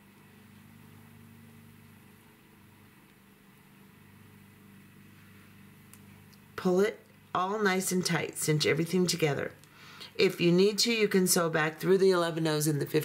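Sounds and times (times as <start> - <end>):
faint low hum with hiss: 0.0 - 13.0.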